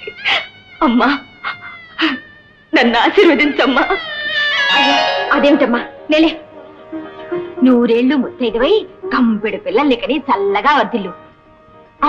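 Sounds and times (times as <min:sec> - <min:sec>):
woman laughing: 0:00.0 - 0:02.3.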